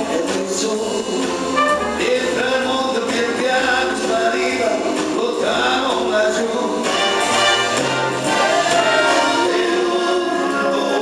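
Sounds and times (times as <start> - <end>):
live band music: 0.0 - 11.0
voices singing together: 0.0 - 11.0.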